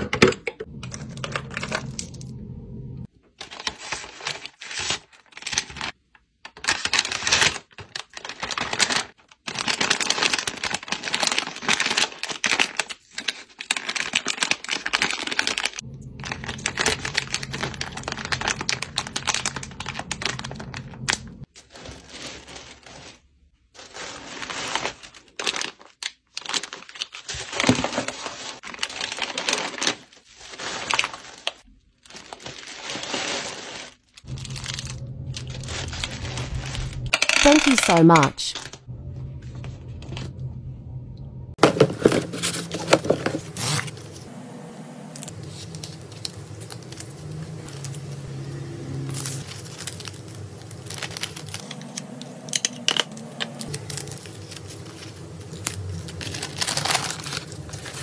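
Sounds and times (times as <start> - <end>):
low hum: 0.6 - 3.1, 15.8 - 21.5, 34.3 - 41.6, 42.2 - 58.0
paper and plastic rustling: 3.2 - 38.8, 41.6 - 44.3, 45.2 - 58.0.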